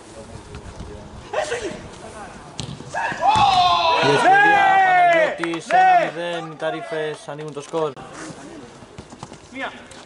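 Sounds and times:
ball impact: 0:02.6 - 0:03.7.

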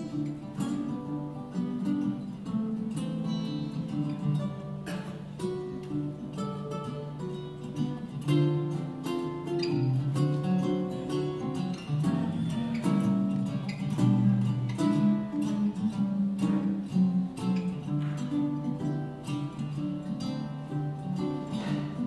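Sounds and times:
jazz guitar playing: 0:00.0 - 0:22.0
ukulele playing: 0:00.0 - 0:22.0.

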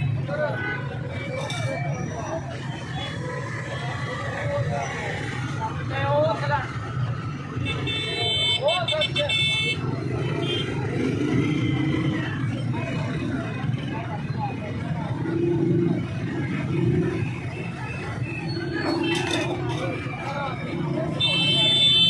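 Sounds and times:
steady traffic noise: 0:00.0 - 0:22.0
voices chattering: 0:00.0 - 0:22.0
vehicle horn: 0:07.6 - 0:09.8, 0:21.2 - 0:22.0.

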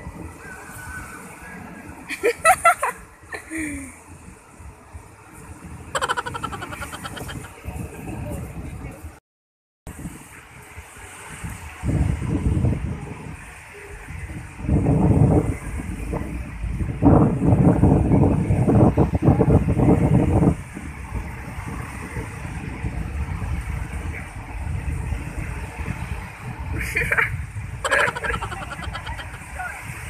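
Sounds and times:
wind buffeting microphone: 0:03.9 - 0:09.2, 0:09.9 - 0:30.0.

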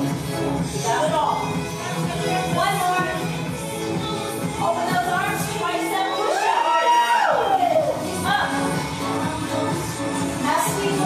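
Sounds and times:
workout music bass: 0:00.0 - 0:11.0
person whooping: 0:06.2 - 0:08.0.

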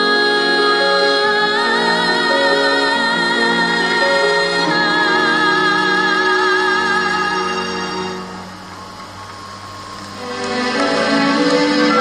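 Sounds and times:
sung passage with sustained notes: 0:00.0 - 0:12.0.

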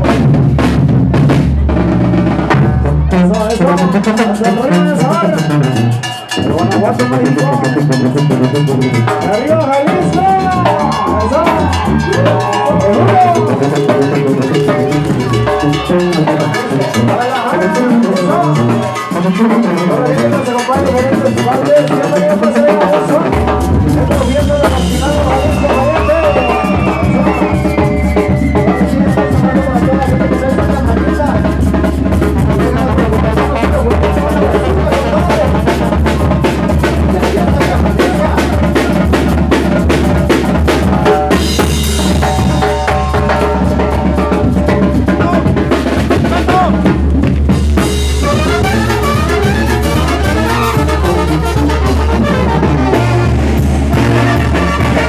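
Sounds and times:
bass drum and snare beat: 0:00.0 - 0:55.0
brass band playing: 0:00.0 - 0:55.0
deep bass line: 0:00.0 - 0:55.0.

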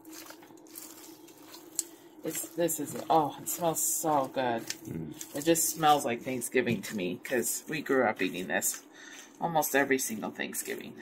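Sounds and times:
spatula squishing gelatin: 0:00.0 - 0:11.0.

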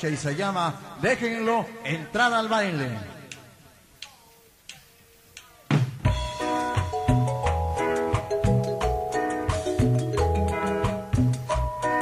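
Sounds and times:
man's voice over loudspeaker: 0:00.0 - 0:05.7
drumstick count-in clicks: 0:03.3 - 0:05.6.

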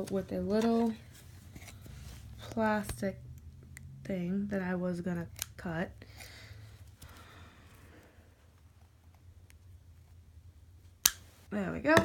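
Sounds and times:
faint handling noise: 0:00.0 - 0:03.2.

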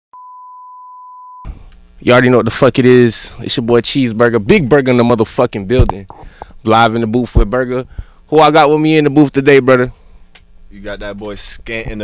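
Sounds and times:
steady electronic beep: 0:00.1 - 0:01.5.

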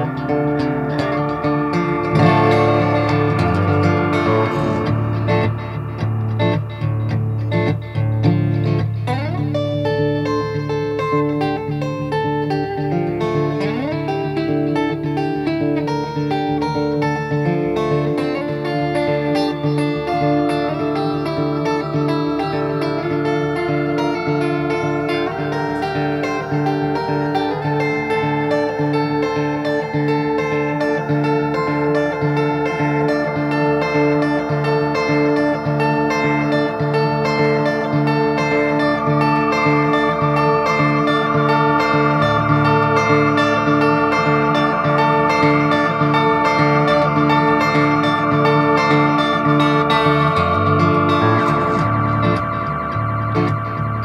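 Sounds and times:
blues guitar playing: 0:00.0 - 0:54.0.

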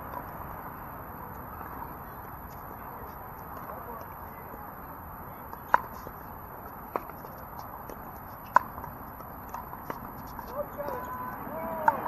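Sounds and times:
outdoor background noise: 0:00.0 - 0:12.0
pickleball paddles striking balls: 0:05.5 - 0:12.0.

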